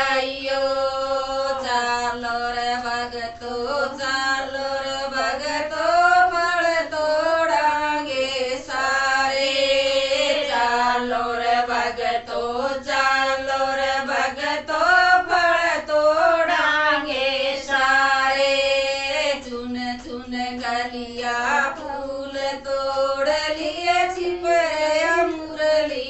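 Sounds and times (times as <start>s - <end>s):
women singing together: 0.0s - 26.0s.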